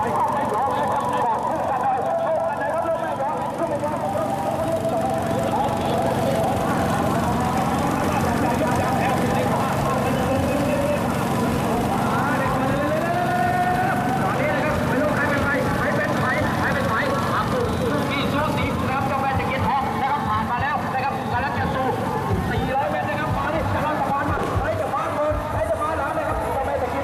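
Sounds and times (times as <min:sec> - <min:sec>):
announcer talking: 0:00.0 - 0:27.0
crowd noise: 0:00.0 - 0:27.0.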